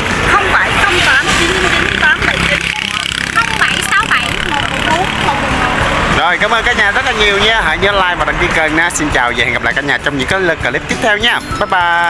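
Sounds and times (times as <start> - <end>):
motor vehicle humming: 0.0 - 12.0.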